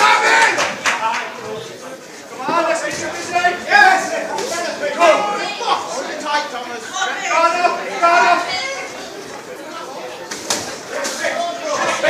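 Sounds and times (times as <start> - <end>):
crowd shouting and chatter: 0.0 - 12.0.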